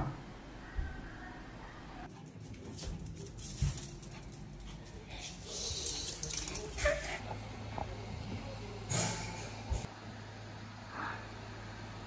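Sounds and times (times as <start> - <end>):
dog paws tapping on wooden floor: 2.1 - 7.9.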